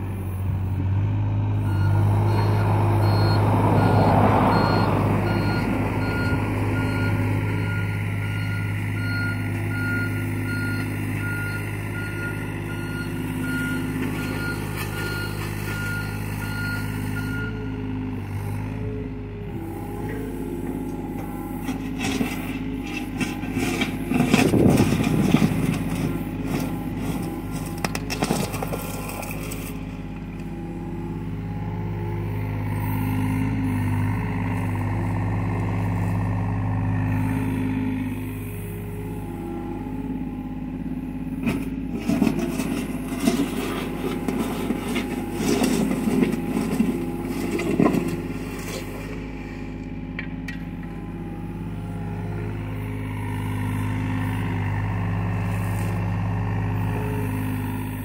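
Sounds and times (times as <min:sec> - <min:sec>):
diesel excavator engine running: 0:00.0 - 0:58.0
bucket scraping dirt and rock: 0:21.2 - 0:30.0, 0:41.4 - 0:49.7.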